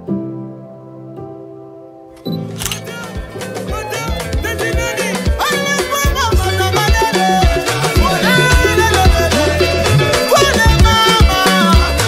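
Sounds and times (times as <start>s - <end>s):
camera shutter click: 2.2s - 3.0s
music with singing: 2.4s - 12.0s.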